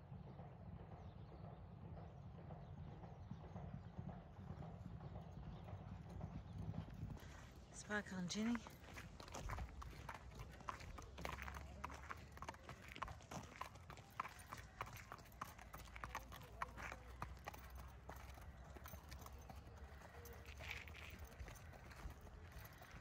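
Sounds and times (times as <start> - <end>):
horse hooves clip-clopping: 0.7 - 23.0.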